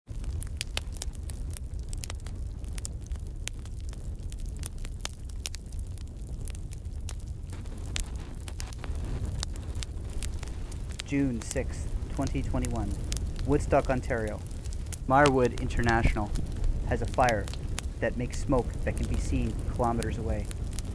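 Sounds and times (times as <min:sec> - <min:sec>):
fire crackling and popping: 0:00.1 - 0:20.9
steady low rumble: 0:00.1 - 0:20.9.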